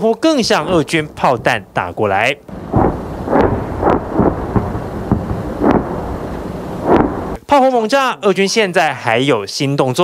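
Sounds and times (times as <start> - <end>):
continuous low rumble: 0.4 - 7.4
distant artillery booms: 0.4 - 7.4.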